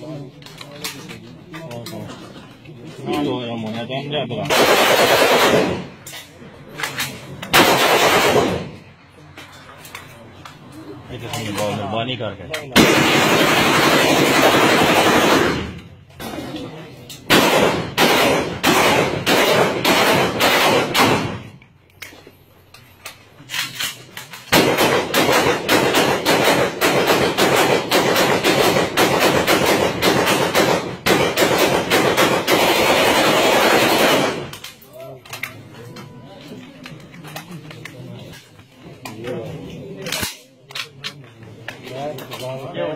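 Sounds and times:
rifle gunfire: 4.4s - 6.0s, 7.5s - 8.8s, 12.7s - 15.8s, 17.3s - 21.6s, 24.5s - 34.6s.

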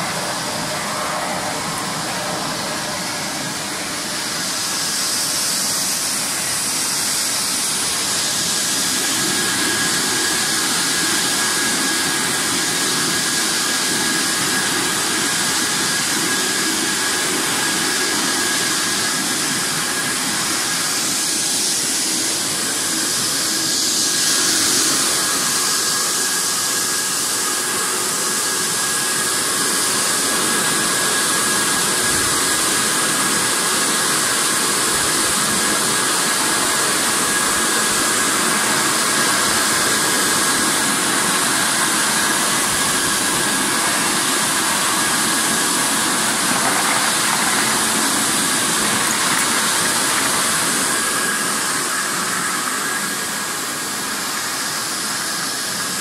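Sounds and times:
rush of air from blowers: 0.0s - 56.0s
thin steady machine whine: 0.0s - 56.0s.

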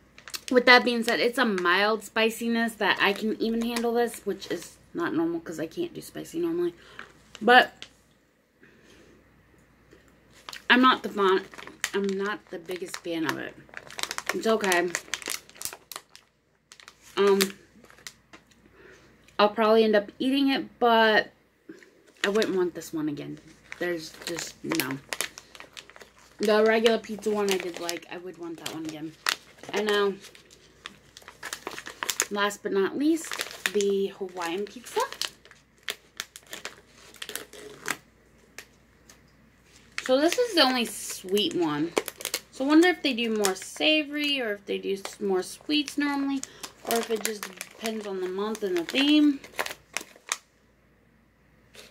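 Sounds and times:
plastic bag crinkling: 0.0s - 4.7s, 10.3s - 18.6s, 22.0s - 50.5s.

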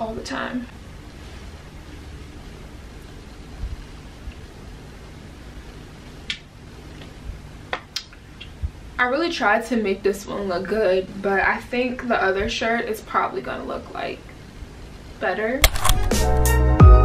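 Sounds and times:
low steady hum: 0.0s - 16.9s.

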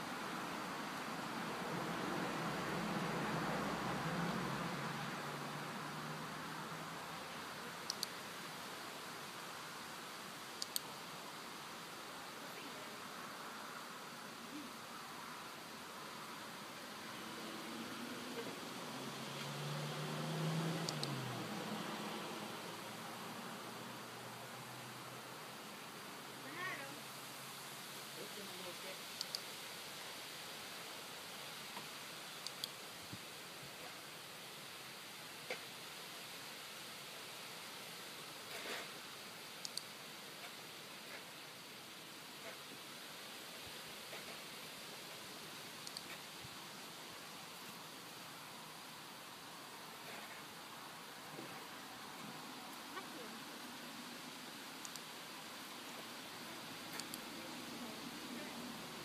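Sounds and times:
faint outdoor hiss: 0.0s - 59.0s
faint short clicks: 7.8s - 8.2s, 10.6s - 10.9s, 20.8s - 21.2s, 29.2s - 29.4s, 39.6s - 39.9s, 45.8s - 46.2s, 54.8s - 55.1s
small faint clicks: 7.8s - 8.2s, 10.6s - 11.0s, 20.8s - 21.2s, 29.1s - 29.5s, 31.7s - 32.8s, 39.6s - 41.3s, 45.8s - 46.3s, 54.8s - 55.1s, 56.9s - 57.3s.

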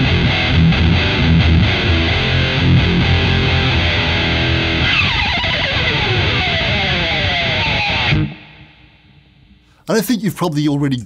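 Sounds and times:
distorted electric guitar chords: 0.0s - 9.7s
guitar slide falling in pitch: 0.1s - 8.6s.

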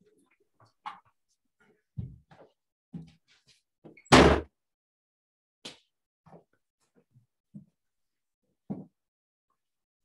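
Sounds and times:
door slamming shut: 4.1s - 4.5s.

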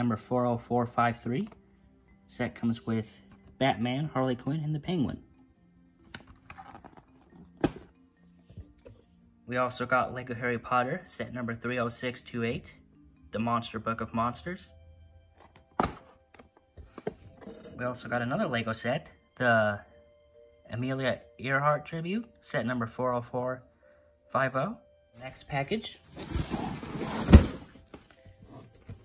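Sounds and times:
faint background music: 0.0s - 29.0s
box thump on floor: 7.6s - 7.9s, 15.8s - 16.1s, 27.1s - 27.7s
cardboard box scraping on floor: 26.1s - 27.8s
cardboard box thunk on wooden floor: 27.1s - 27.7s.

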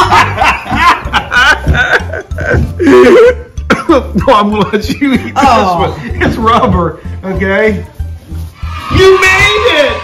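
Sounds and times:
man laughing heartily: 0.0s - 4.3s.

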